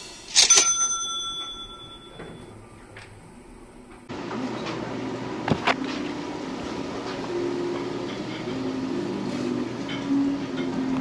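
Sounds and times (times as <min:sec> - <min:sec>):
dining room background noise: 0:00.0 - 0:11.0.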